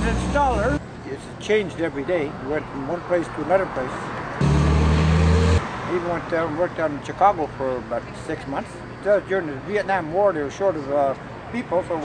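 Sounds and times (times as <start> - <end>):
vehicle engine humming: 0.0 - 1.0, 4.4 - 6.3.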